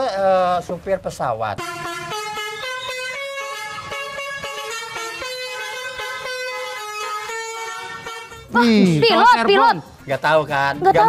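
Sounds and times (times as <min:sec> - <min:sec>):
comic horn-like tune: 0:01.6 - 0:09.8.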